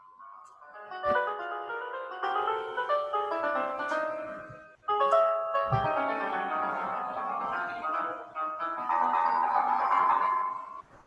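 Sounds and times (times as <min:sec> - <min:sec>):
electronic piano notes: 0:00.0 - 0:10.8.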